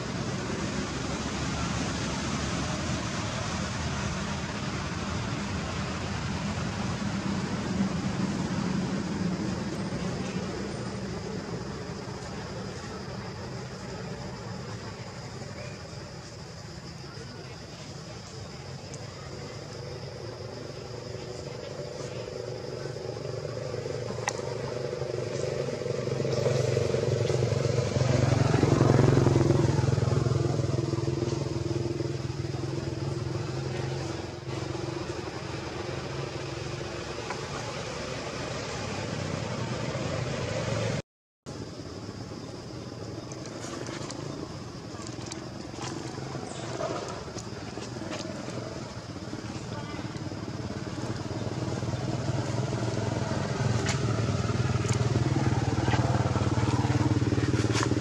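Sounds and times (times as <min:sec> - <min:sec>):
vehicle engine passing: 0:21.9 - 0:41.0, 0:43.6 - 0:58.0.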